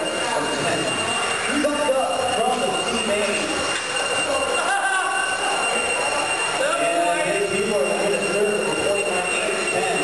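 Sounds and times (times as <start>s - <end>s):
rc car motors whining: 0.0s - 10.0s
steady high-pitched tone: 0.0s - 10.0s
voices in a hall: 0.0s - 10.0s.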